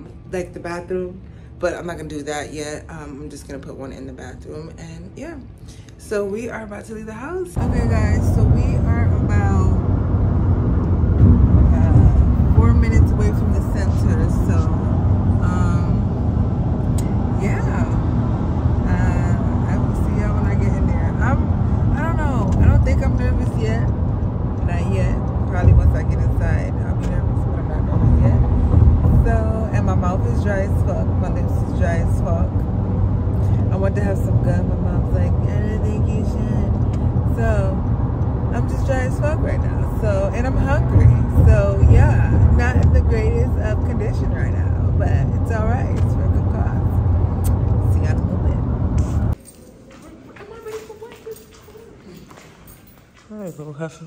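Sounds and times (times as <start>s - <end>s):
woman speaking: 0.0s - 9.9s, 11.6s - 16.2s, 16.9s - 18.2s, 18.8s - 24.0s, 24.6s - 32.7s, 33.4s - 52.4s
car interior rumble: 7.6s - 49.4s.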